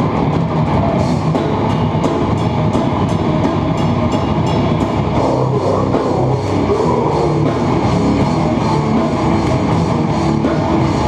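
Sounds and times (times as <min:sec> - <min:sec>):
live rock band playing: 0:00.0 - 0:11.0
drum hits: 0:01.1 - 0:10.9.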